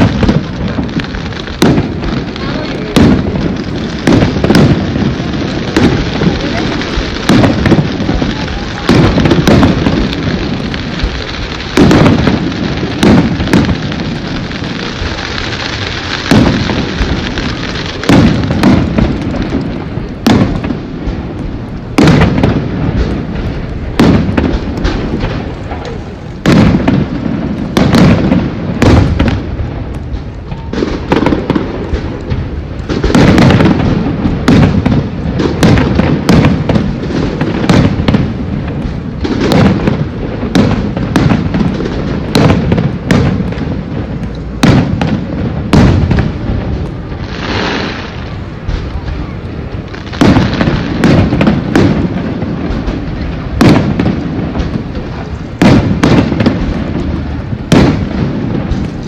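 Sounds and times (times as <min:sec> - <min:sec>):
firework shells bursting: 0:00.0 - 0:59.0.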